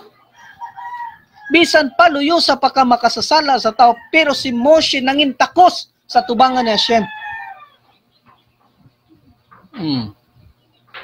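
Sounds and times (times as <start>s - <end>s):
rooster crowing: 0.2s - 2.2s, 3.6s - 4.8s, 6.1s - 7.9s.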